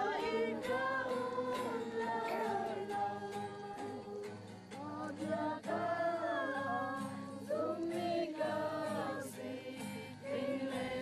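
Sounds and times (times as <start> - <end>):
acoustic guitar: 0.0 - 11.0
voices singing together: 0.0 - 11.0.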